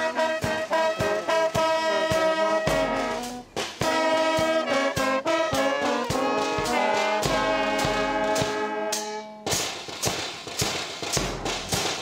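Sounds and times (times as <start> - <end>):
drums beating steady rhythm: 0.0 - 12.0.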